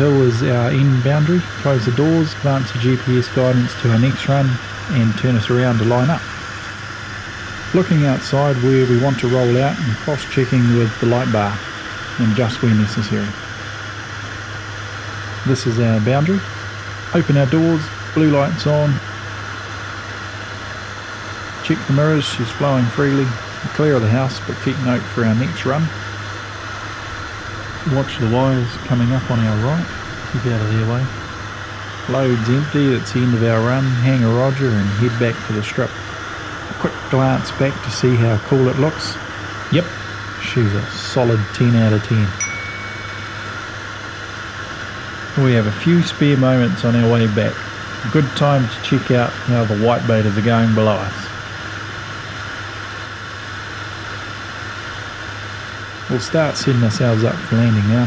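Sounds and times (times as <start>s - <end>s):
airflow hiss: 0.0s - 58.0s
turboprop engine cockpit hum: 0.0s - 58.0s.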